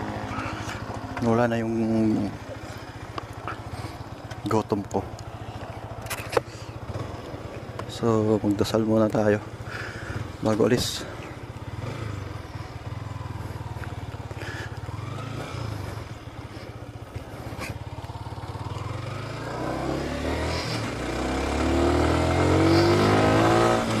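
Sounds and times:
motorcycle engine accelerating: 0.0 - 24.0.

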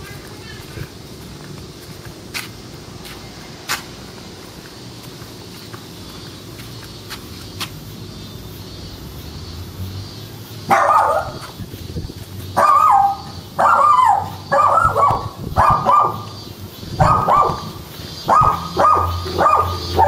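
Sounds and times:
dog barking: 10.7 - 11.5, 12.6 - 16.3, 17.0 - 20.0.

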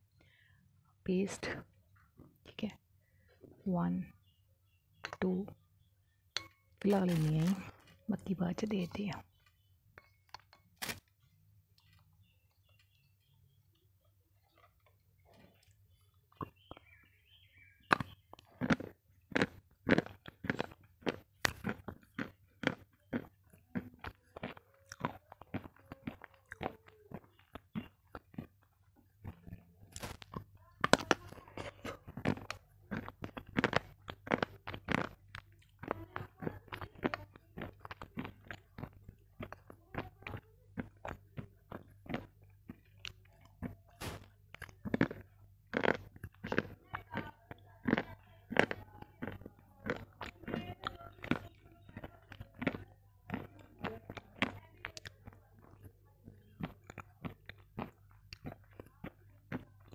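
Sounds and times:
crunching brittle stick: 6.8 - 13.0, 17.9 - 55.9, 56.6 - 59.9.

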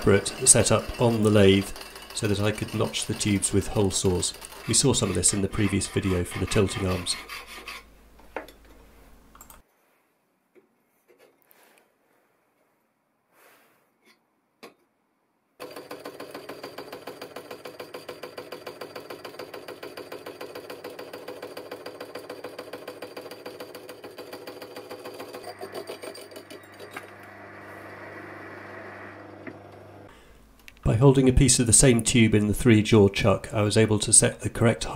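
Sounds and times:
hole saw cutting steel tube: 0.0 - 7.9.

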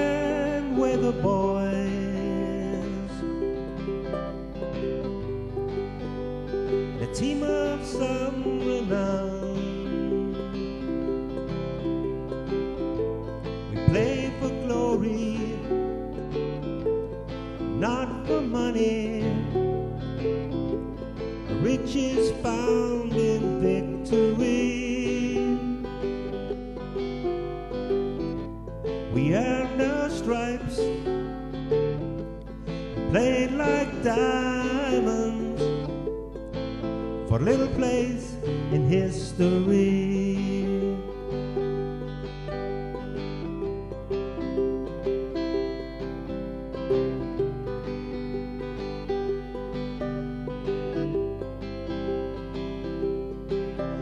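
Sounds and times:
acoustic guitar strumming: 0.0 - 54.0
held accompanying notes: 0.0 - 54.0.

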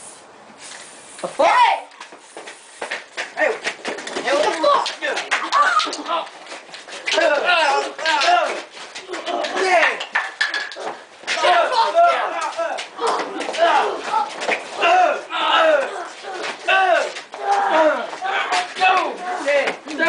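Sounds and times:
people shouting and yelling: 1.2 - 2.0, 3.4 - 10.2, 10.8 - 20.0
knocks and scuffs: 2.0 - 20.0.

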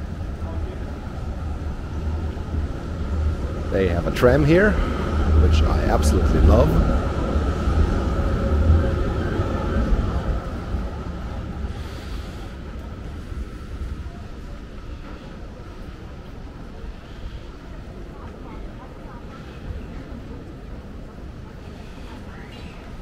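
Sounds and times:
street background: 0.0 - 23.0
tram rumble and whine: 0.0 - 23.0.

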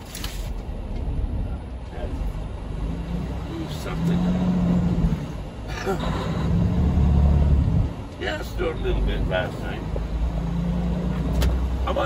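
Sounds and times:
diesel truck engine droning: 0.0 - 12.0.

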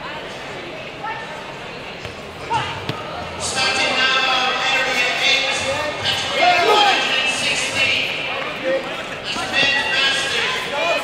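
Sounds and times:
crowd talking and calling out: 0.0 - 11.0.

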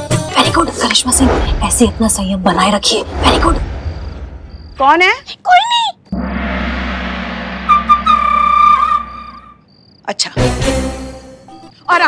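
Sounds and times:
gong ringing: 6.2 - 9.4
high whistle-like tone: 6.2 - 9.7.

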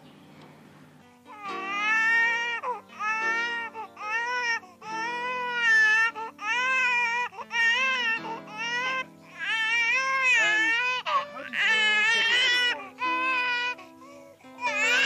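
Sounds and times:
infant crying: 1.3 - 15.0.

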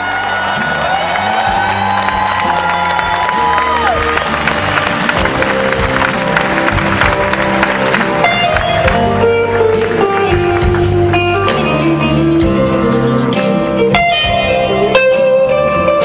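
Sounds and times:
crowd cheering and applauding: 0.0 - 12.1
live band music: 0.0 - 16.0.

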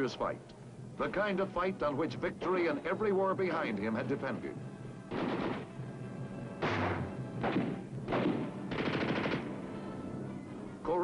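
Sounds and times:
automatic gunfire burst: 5.1 - 5.7, 6.6 - 9.5
single gunshot with echo: 5.1 - 5.7, 6.6 - 9.5.

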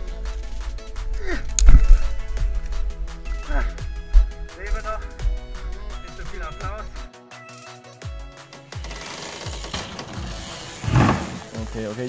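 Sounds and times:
background music with steady beat: 0.0 - 12.0
loud thump: 9.8 - 11.6.

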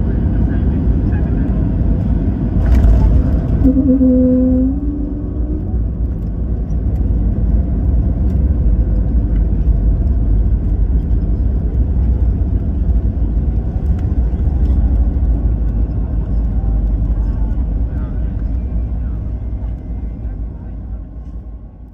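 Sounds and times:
airliner cabin low rumble: 0.0 - 21.9.

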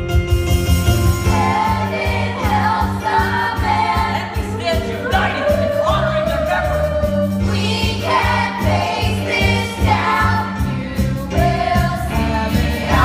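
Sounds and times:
backing music with bass and beat: 0.0 - 13.0
ensemble singing in chorus: 1.3 - 13.0.

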